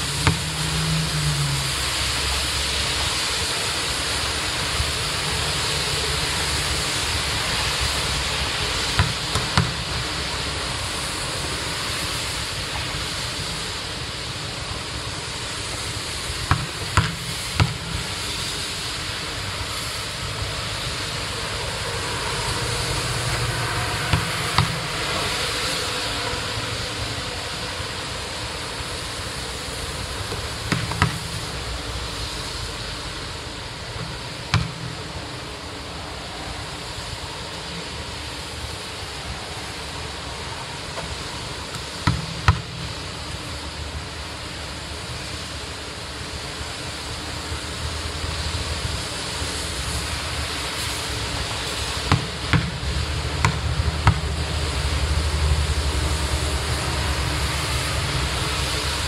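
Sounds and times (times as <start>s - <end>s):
steady rain hiss: 0.0s - 59.0s.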